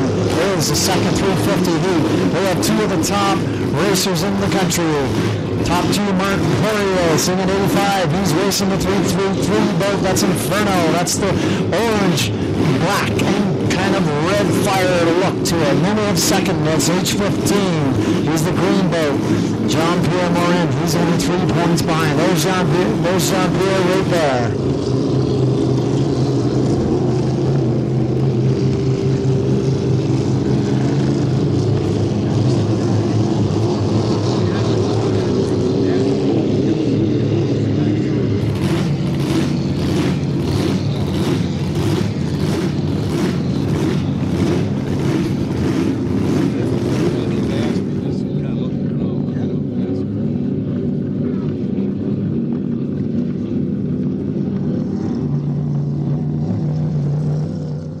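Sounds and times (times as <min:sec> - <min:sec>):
racing boat engines: 0:00.0 - 0:58.0.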